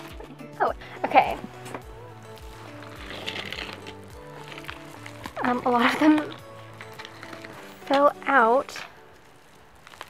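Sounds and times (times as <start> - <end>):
background music with held tones: 0.0 - 10.0
plastic mailing bag rustling: 2.0 - 10.0.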